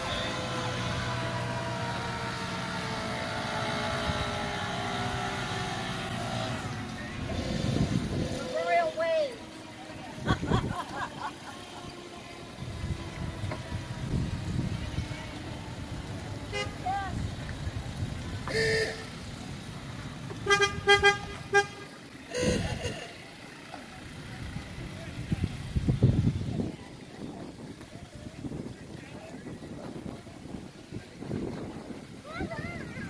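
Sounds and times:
golf cart horns honking: 0:00.0 - 0:17.0, 0:18.4 - 0:19.4, 0:20.2 - 0:23.6
people's voices: 0:00.0 - 0:33.0.

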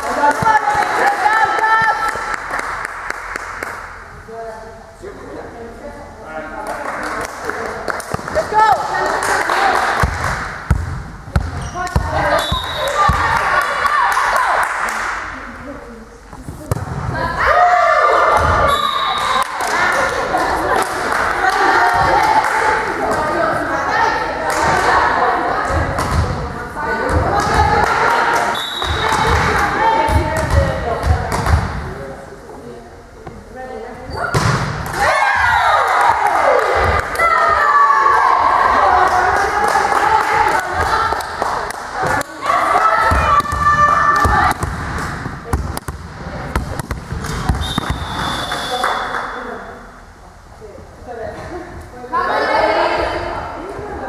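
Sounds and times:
players shouting: 0:34.9 - 0:41.2, 0:42.1 - 0:44.6.

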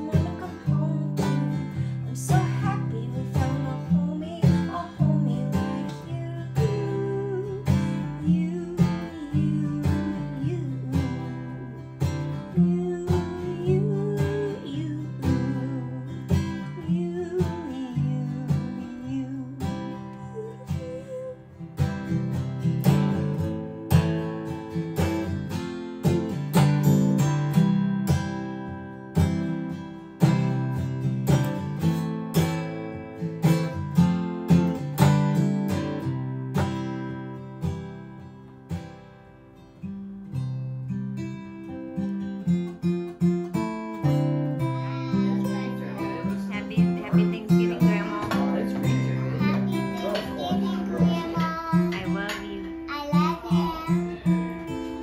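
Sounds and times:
guitar band music: 0:00.0 - 0:55.0
sliding guitar melody: 0:00.0 - 0:55.0.

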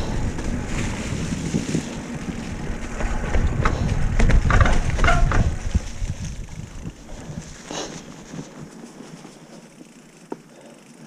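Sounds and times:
wind rumbling on microphone: 0:00.0 - 0:08.8
bike clicks and rattles: 0:00.0 - 0:11.0
bike rolling over dirt trail: 0:00.0 - 0:11.0.

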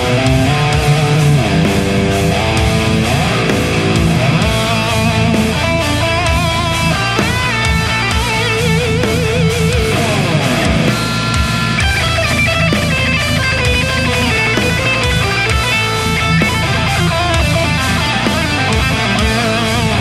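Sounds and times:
backing mix with drums: 0:00.0 - 0:20.0
distorted electric guitar lead: 0:00.0 - 0:20.0.

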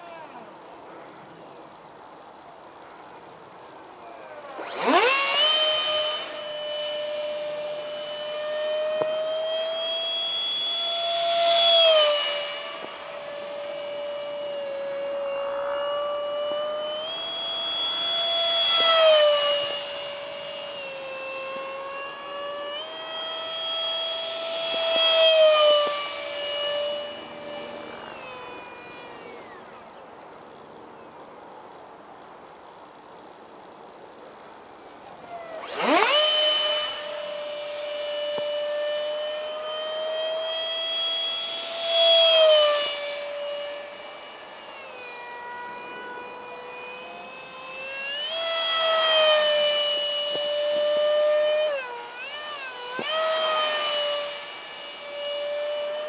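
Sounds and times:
electric ducted fan whining: 0:00.0 - 0:56.0.

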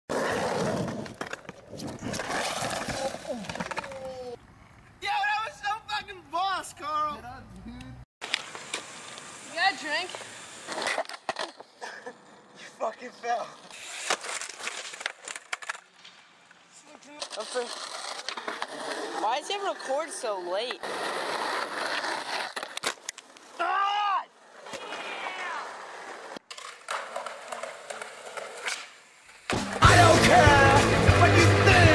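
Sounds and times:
skateboard wheels rolling on concrete: 0:00.1 - 0:07.1, 0:08.2 - 0:31.9
skateboard clacking on ground: 0:14.0 - 0:16.0, 0:17.1 - 0:23.4, 0:26.4 - 0:29.8
skateboard clattering: 0:24.6 - 0:30.9.

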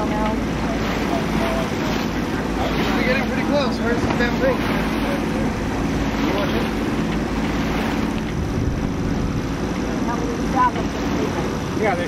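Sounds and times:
faint voices: 0:00.0 - 0:08.2
water noise: 0:00.0 - 0:12.0
wind: 0:00.0 - 0:12.0.

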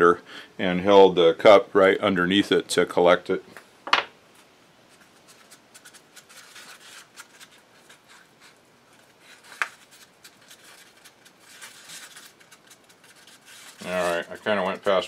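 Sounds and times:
stick scraping in paper cup: 0:05.2 - 0:15.0.

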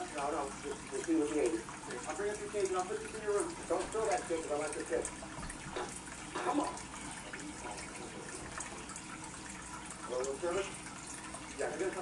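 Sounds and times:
water trickling: 0:00.0 - 0:12.0.

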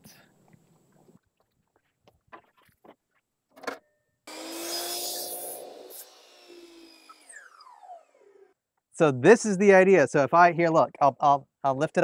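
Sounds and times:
electric saw cutting wood: 0:04.3 - 0:08.6
saw motor whining down: 0:04.3 - 0:08.6.

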